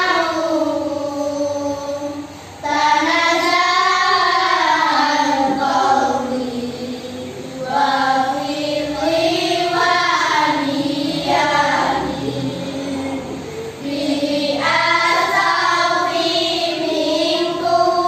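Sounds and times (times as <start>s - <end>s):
voices singing slow melody: 0.0s - 18.0s.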